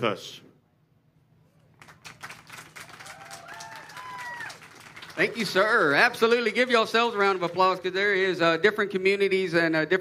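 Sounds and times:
audience applauding: 1.8 - 8.4.

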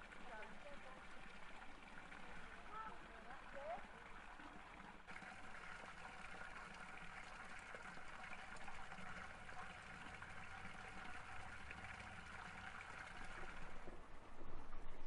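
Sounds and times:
trickle of running water: 0.0 - 15.0.

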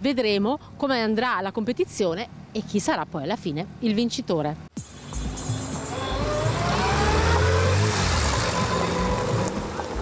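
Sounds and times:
car engine accelerating: 5.1 - 10.0.

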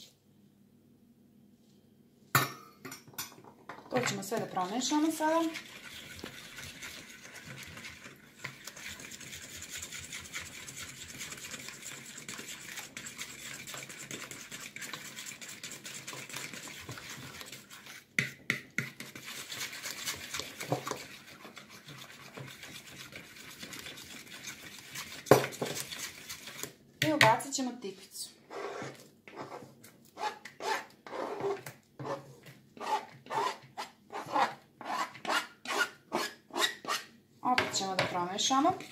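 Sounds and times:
batter stirred in plastic bowl: 3.9 - 35.9, 37.4 - 38.9.

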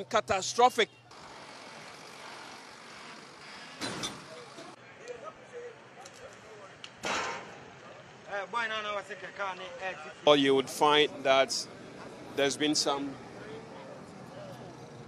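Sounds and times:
roadside traffic noise: 0.0 - 15.0
voices: 7.6 - 15.0.

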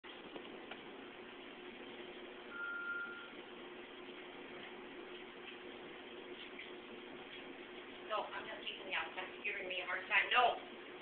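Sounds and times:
low steady hum: 0.1 - 11.0
steady electronic beep: 2.5 - 3.4.

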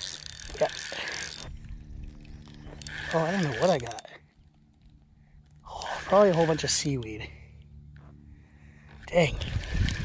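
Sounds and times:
fishing reel whirring and clicking: 0.0 - 7.3, 9.2 - 10.0.

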